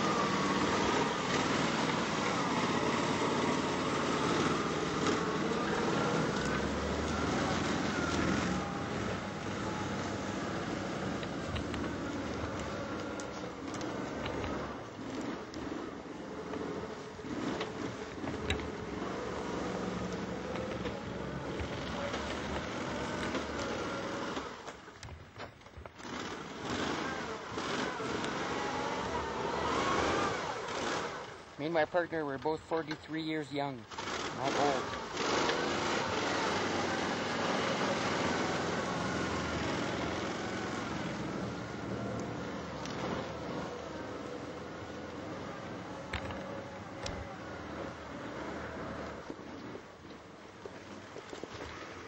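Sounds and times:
vehicle engine revving: 0.0 - 24.9, 25.9 - 52.0.

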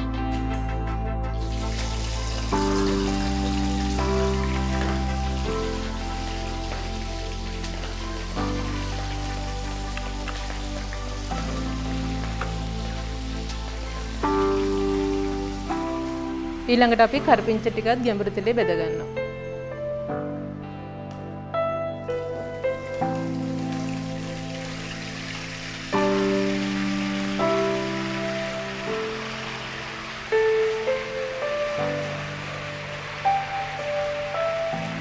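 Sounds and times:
background music of held chords: 0.0 - 35.0
food deep-frying in oil: 1.3 - 18.2, 22.2 - 35.0.

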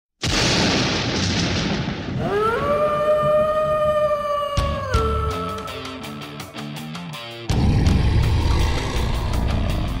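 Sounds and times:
eerie rising wail: 2.2 - 6.3, 7.5 - 10.0.

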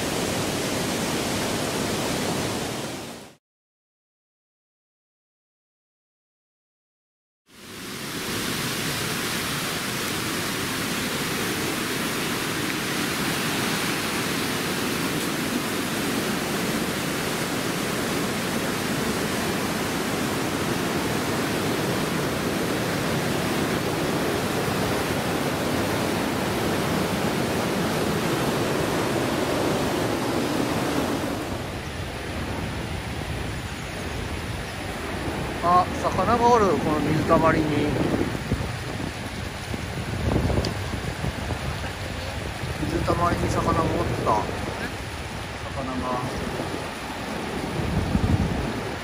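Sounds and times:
river rushing over rapids: 0.0 - 3.4, 7.5 - 49.0.

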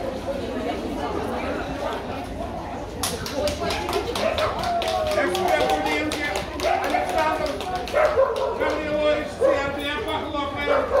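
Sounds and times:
people talking: 0.0 - 11.0
dog barking: 7.9 - 8.8, 9.4 - 9.7, 10.6 - 11.0.

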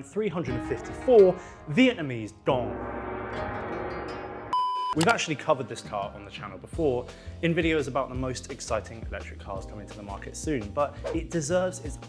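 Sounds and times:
held musical chord: 0.5 - 4.6
high-pitched electronic beep: 4.5 - 5.0.

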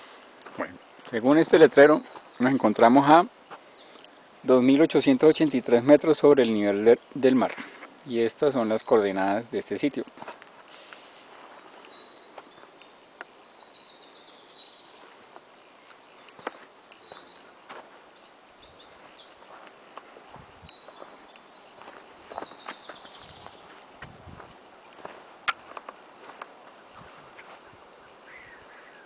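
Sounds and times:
small birds singing: 0.0 - 29.0
soft outdoor hiss: 0.0 - 29.0.

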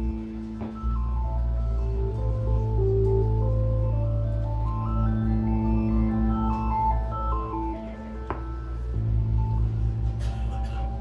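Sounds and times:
low synth drone: 0.0 - 11.0
synthesizer melody: 0.0 - 11.0.

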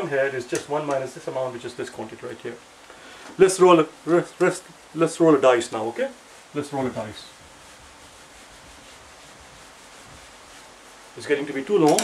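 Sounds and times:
eraser rubbing on whiteboard: 6.3 - 12.0.

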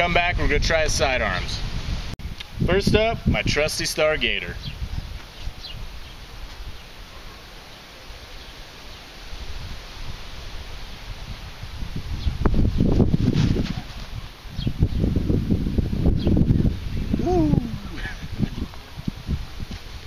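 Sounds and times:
wind buffeting microphone: 0.0 - 6.8, 9.3 - 20.0.

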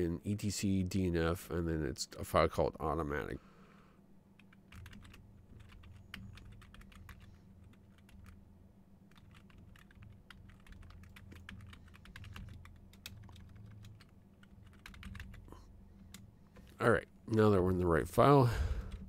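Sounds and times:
steady low hum: 0.0 - 19.0
typing on computer keyboard: 4.4 - 8.4, 9.1 - 15.5.

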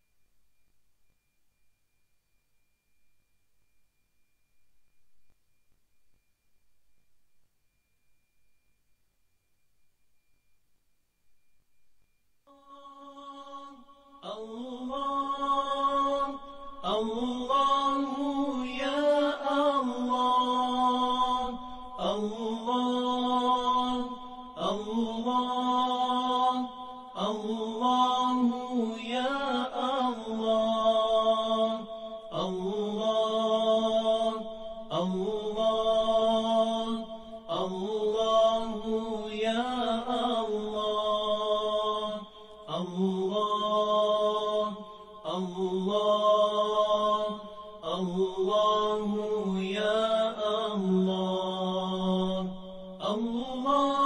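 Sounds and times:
person chanting a devotional melody: 12.5 - 54.0.

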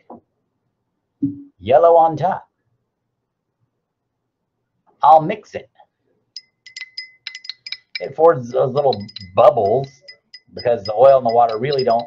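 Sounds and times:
stirring rod clinking on glass: 6.4 - 12.0.

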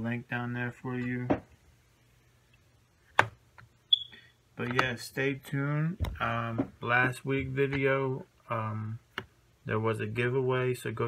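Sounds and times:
brief high squeak: 3.9 - 4.3.

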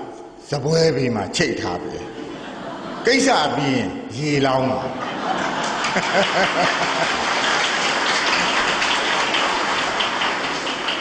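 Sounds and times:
audience applauding: 5.2 - 11.0.

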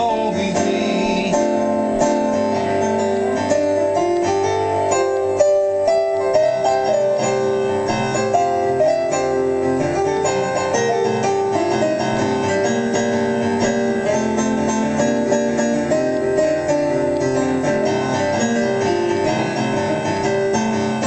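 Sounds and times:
keyboard chords and melody: 0.0 - 21.0.

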